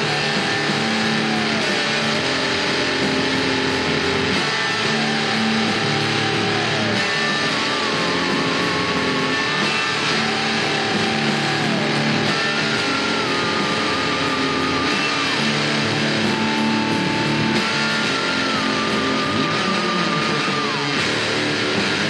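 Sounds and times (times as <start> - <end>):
electric guitar heavy rock riff: 0.0 - 22.0.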